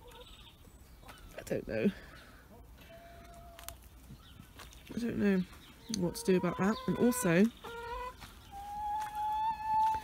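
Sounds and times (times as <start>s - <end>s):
faint hens clucking: 0.0s - 10.0s.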